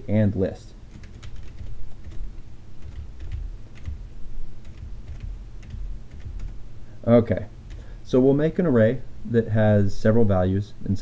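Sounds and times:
low steady hum: 0.0 - 11.0
typing on computer keyboard: 0.9 - 4.0, 4.6 - 6.6.

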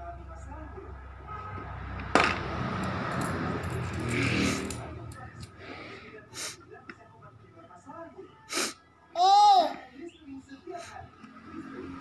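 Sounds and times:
child's faint voice: 9.2 - 9.9.

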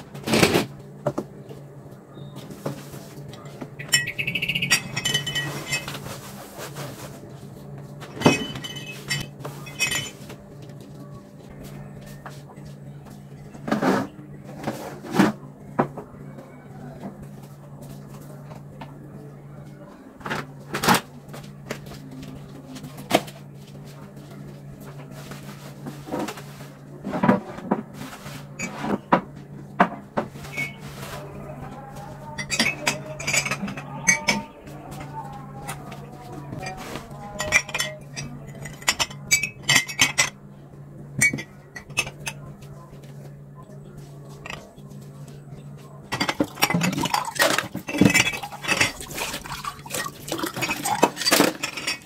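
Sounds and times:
glass mugs clinking: 3.8 - 6.2, 8.1 - 10.3, 30.4 - 30.8, 32.4 - 35.8, 36.5 - 40.4, 41.2 - 42.4, 46.1 - 52.0.

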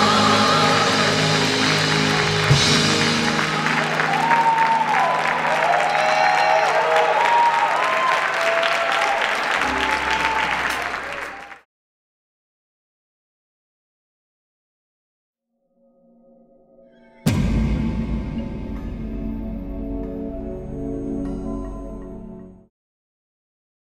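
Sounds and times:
gospel choir and band chord: 0.0 - 6.1
audience applauding and cheering: 0.0 - 11.7
shouted whoops: 3.5 - 11.6.

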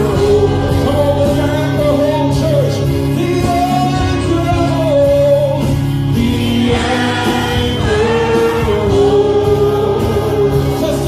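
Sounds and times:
male vocal group singing gospel: 0.0 - 11.0
musical accompaniment: 0.0 - 11.0.

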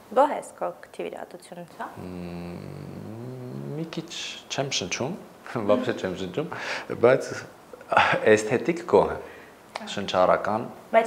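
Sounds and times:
man humming a long vowel: 2.0 - 4.0
man speaking: 2.0 - 9.3.

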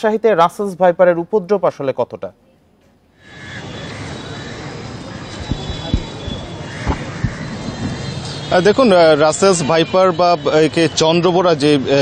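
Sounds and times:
road traffic rumble: 3.2 - 12.0
faint knocks: 5.3 - 8.0.

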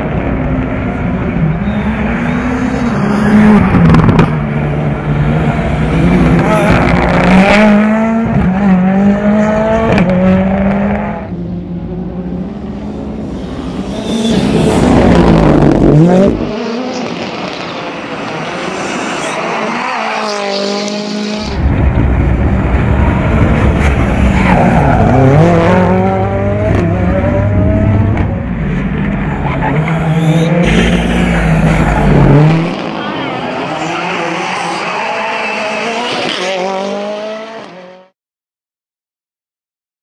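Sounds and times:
rally car engine revving: 0.0 - 38.1.

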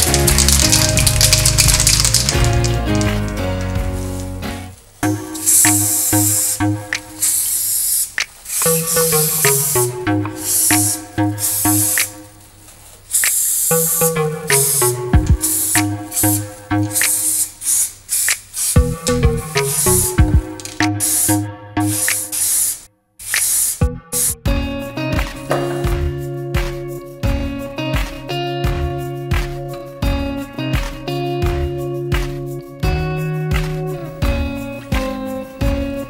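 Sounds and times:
background music: 0.0 - 7.8, 8.6 - 12.6, 13.2 - 17.4, 18.8 - 22.7, 23.3 - 36.0
spray paint can hissing: 0.0 - 24.4.

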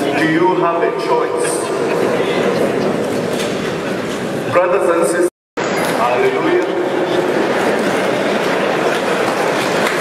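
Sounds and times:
crowd of voices talking: 0.0 - 10.0.

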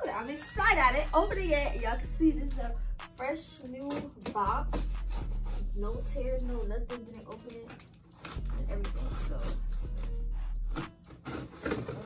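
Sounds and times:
background music with low bass: 0.0 - 12.0
scissors cutting packing tape: 7.7 - 12.0.

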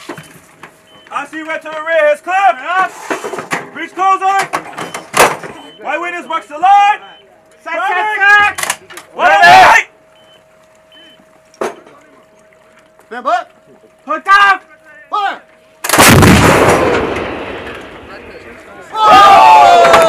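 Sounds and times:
people shouting commands: 6.0 - 9.9, 18.8 - 20.0
faint steady tone: 9.2 - 15.8.

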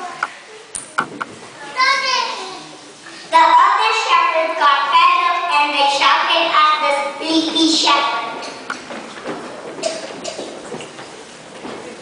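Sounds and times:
child speaking over speakers: 0.0 - 0.4, 1.6 - 8.6.

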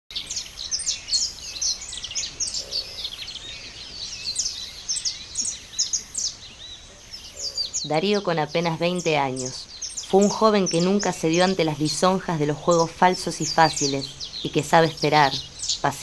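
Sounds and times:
birds chirping: 0.1 - 16.0.

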